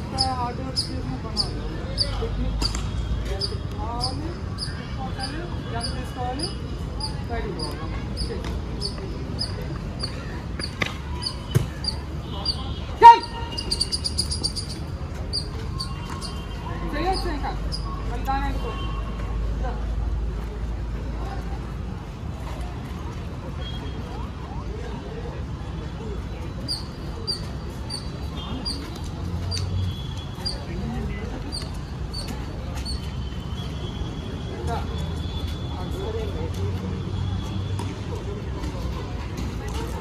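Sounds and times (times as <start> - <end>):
people talking and calling out: 0.0 - 40.0.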